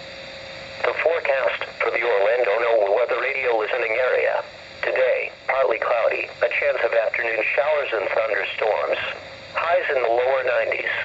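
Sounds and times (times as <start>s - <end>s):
static hiss: 0.0s - 11.0s
radio voice through small speaker: 0.8s - 11.0s.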